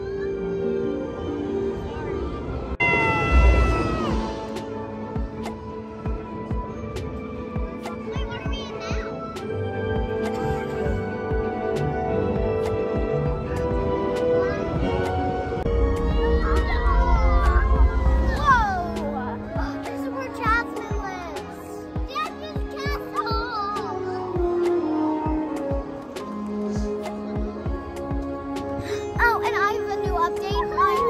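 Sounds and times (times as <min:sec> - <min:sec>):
orchestral soundtrack: 0:00.0 - 0:31.0
deep rumble: 0:13.2 - 0:19.7.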